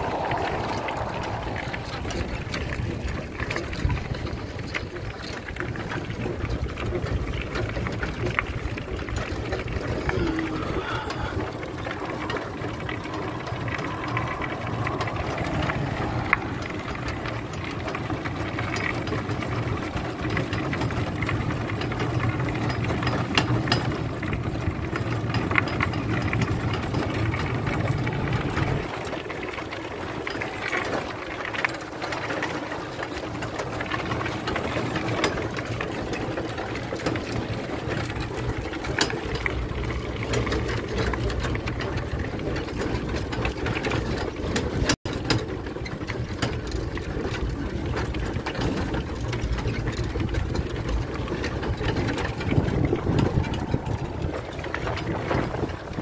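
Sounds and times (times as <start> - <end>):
tyre noise on rough trail: 0.0 - 56.0.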